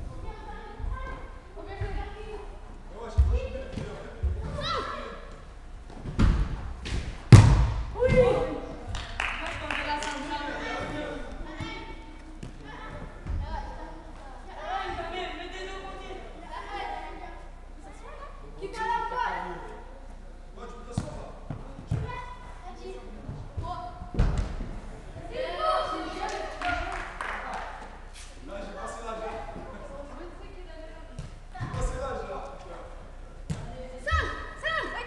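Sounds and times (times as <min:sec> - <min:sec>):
football kicked hitting walls: 0:06.0 - 0:08.4.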